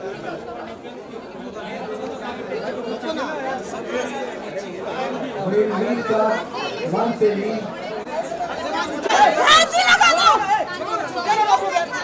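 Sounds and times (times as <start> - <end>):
crowd chatter: 0.0 - 12.0.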